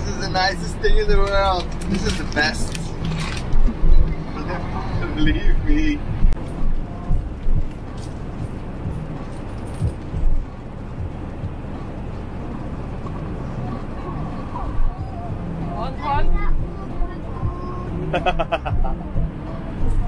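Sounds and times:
road and engine rumble: 0:00.0 - 0:20.0.

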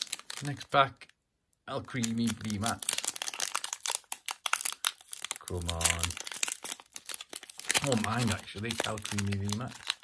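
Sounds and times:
foil wrapper crinkling: 0:00.0 - 0:00.8, 0:01.9 - 0:10.0.

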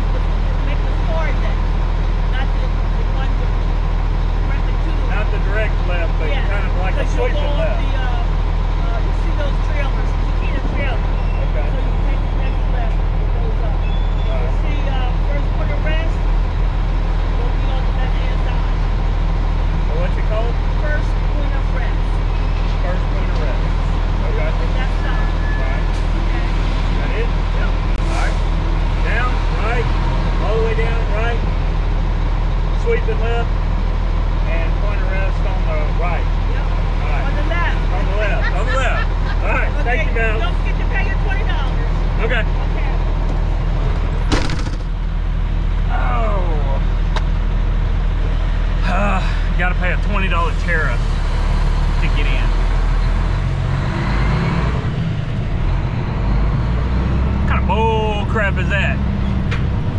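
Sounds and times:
people talking: 0:00.0 - 0:01.7, 0:02.3 - 0:03.6, 0:04.4 - 0:16.2, 0:17.4 - 0:18.8, 0:19.8 - 0:28.4, 0:29.0 - 0:31.4, 0:32.8 - 0:33.5, 0:34.5 - 0:43.1, 0:45.8 - 0:46.9, 0:48.8 - 0:51.0, 0:52.0 - 0:52.6, 0:57.5 - 0:59.0
diesel engine idling: 0:00.0 - 0:59.9.

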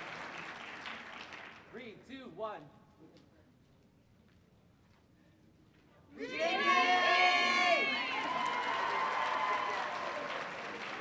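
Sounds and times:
teenagers shouting a cheer: 0:06.2 - 0:10.4
crowd cheering: 0:06.2 - 0:11.0.

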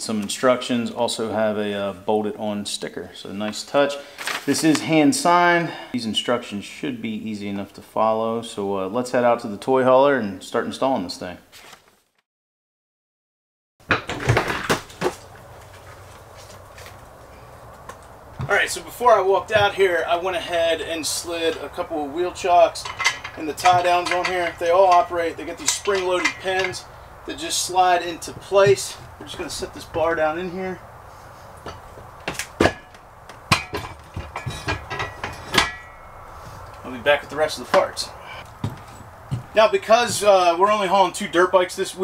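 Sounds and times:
faint background hiss: 0:14.7 - 0:42.0
metal bar knocking and clanking: 0:22.4 - 0:26.9, 0:31.6 - 0:36.2.

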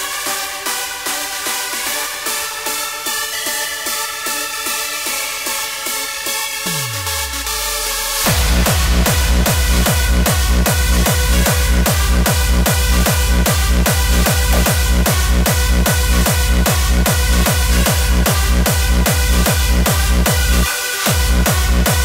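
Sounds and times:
sustained synth chords: 0:06.6 - 0:20.7
hardstyle kick drum: 0:06.6 - 0:22.0.

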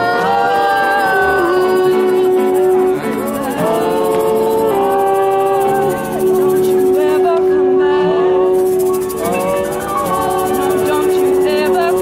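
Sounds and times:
woman singing long notes: 0:00.0 - 0:08.6
acoustic guitar: 0:00.0 - 0:12.0.

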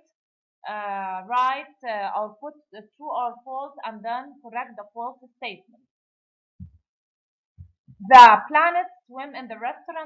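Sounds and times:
faint low thuds: 0:06.6 - 0:06.8, 0:07.6 - 0:08.2.

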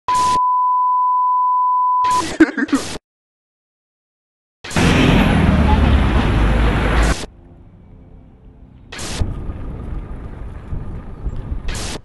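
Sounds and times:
steady test tone beep: 0:00.1 - 0:02.2.

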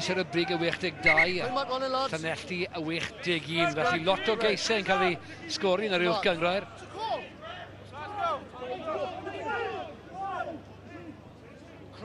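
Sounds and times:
men talking and calling: 0:00.0 - 0:11.9.

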